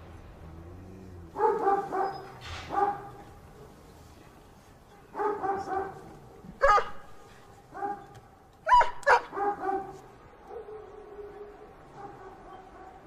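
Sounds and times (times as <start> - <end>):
dog yelping: 1.4 - 3.1, 6.6 - 7.0, 8.6 - 9.9
dog barking: 1.4 - 3.8, 4.9 - 13.0.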